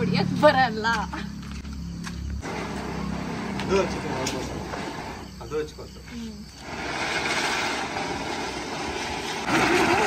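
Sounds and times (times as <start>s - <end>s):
ground firework hissing: 2.4s - 10.0s.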